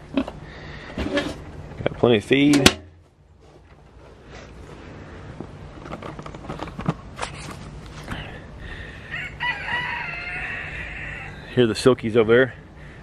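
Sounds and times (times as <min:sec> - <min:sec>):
rooster crowing: 0:09.0 - 0:11.5.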